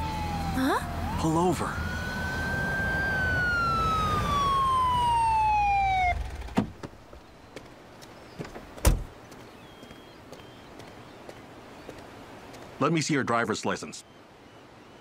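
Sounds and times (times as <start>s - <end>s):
police siren winding down: 0.0s - 6.6s.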